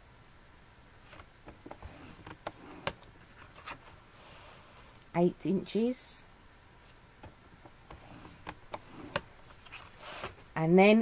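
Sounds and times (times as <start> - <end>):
card rustling: 1.0 - 4.0, 6.9 - 10.5.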